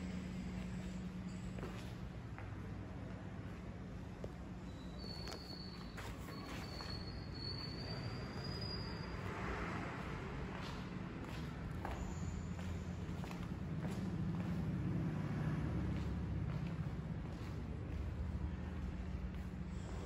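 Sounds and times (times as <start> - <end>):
steady low hum: 0.0 - 8.4, 10.0 - 20.0
soft footsteps: 10.0 - 20.0.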